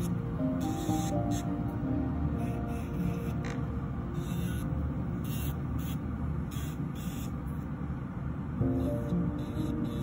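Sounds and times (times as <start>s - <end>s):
electric nail drill running: 0.0s - 1.6s, 2.3s - 7.6s, 8.6s - 10.0s
background music: 0.0s - 4.1s, 8.6s - 10.0s.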